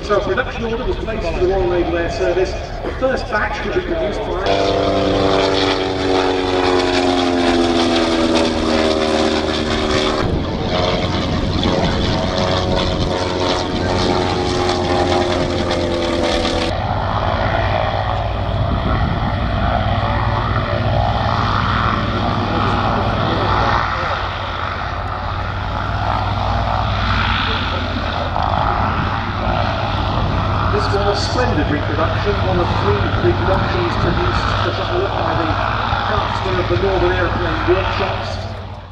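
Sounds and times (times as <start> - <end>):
aircraft engine droning past: 0.0 - 38.9
aircraft landing on grass: 0.0 - 38.9
wind-like noise: 9.8 - 14.6, 16.7 - 36.3.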